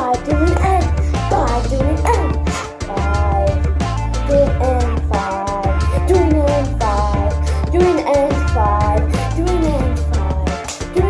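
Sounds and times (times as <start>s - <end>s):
song with heavy bass line: 0.0s - 11.0s.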